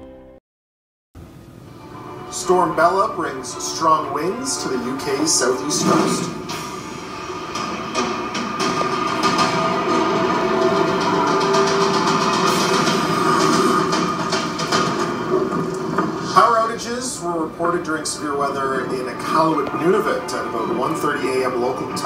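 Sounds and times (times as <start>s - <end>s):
faint sustained hum: 1.2s - 22.0s.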